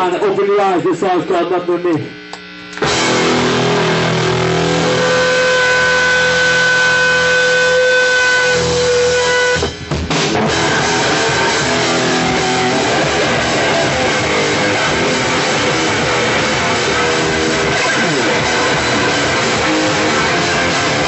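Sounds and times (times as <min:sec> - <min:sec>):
distorted electric guitars: 0:00.0 - 0:21.0
drums: 0:02.8 - 0:21.0
loud live band: 0:02.8 - 0:21.0.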